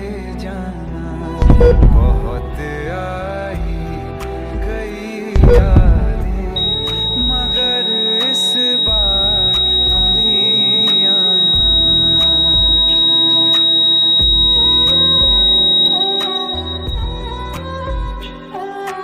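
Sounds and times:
high-pitched tone: 1.4s - 2.4s, 5.4s - 18.2s
instrumental music with pulsing beat: 3.6s - 19.0s.

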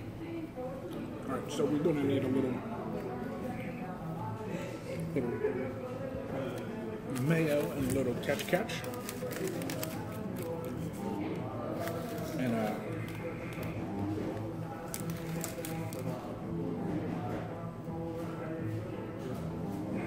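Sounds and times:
diners chatter: 0.0s - 20.0s
music playing: 0.0s - 20.0s.

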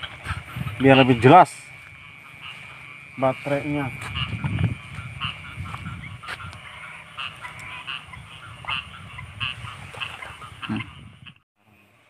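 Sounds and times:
steady low rumble: 0.0s - 9.8s
frogs croaking: 0.0s - 11.4s.

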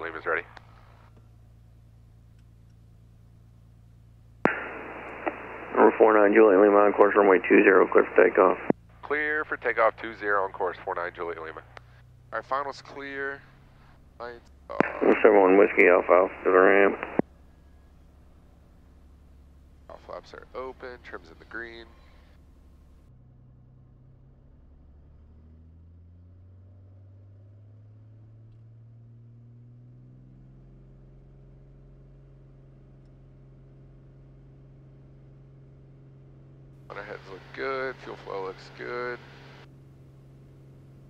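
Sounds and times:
radio voice transmission: 0.0s - 0.5s, 4.5s - 11.8s, 14.2s - 17.2s, 19.9s - 21.9s, 36.9s - 39.6s
faint low engine drone: 0.0s - 41.0s
radio squelch click: 4.5s - 8.8s, 14.8s - 17.2s.

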